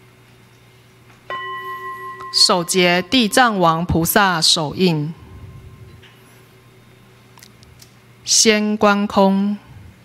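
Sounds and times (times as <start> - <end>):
bell struck and ringing: 1.3 - 3.6.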